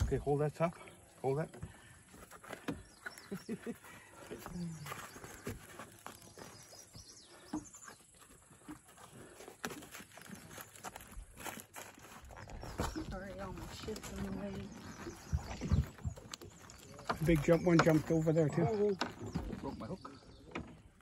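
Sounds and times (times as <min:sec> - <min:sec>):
gear knocking in a boat: 0:12.6 - 0:21.0.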